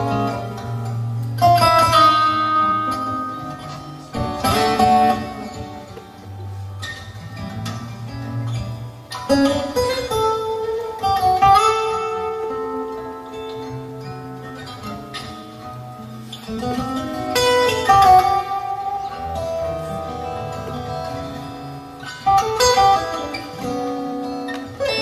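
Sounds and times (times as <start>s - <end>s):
fingerstyle acoustic guitar: 0.0s - 25.0s
strummed guitar chords: 0.0s - 25.0s.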